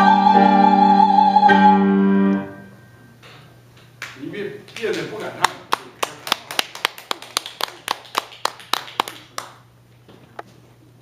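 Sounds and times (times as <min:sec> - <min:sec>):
hand clapping: 0:04.0 - 0:09.6.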